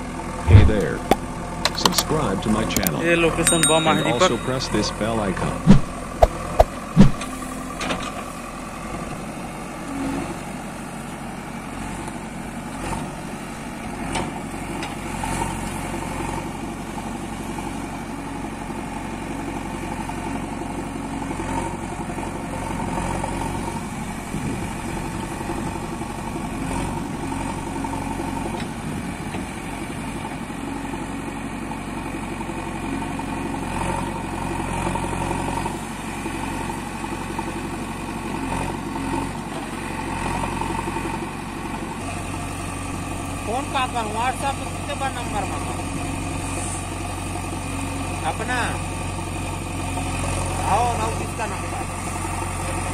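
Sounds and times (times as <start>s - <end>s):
diesel engine running: 0.0s - 52.9s.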